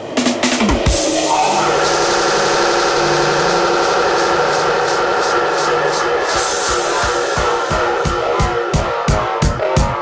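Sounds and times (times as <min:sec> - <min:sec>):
held synth chords and drone: 0:00.0 - 0:10.0.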